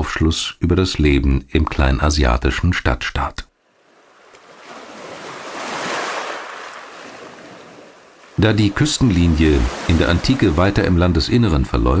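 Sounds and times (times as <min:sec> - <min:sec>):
ocean wave washing in: 0:03.8 - 0:11.0.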